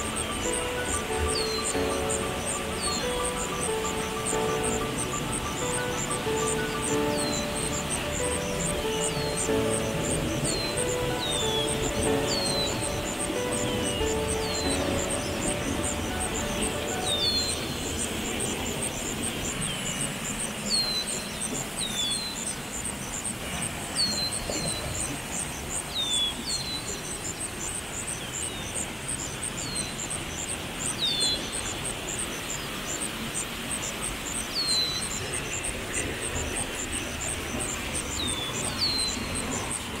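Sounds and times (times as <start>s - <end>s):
bird chirping: 0.0s - 40.0s
small waterfall rushing: 0.0s - 40.0s.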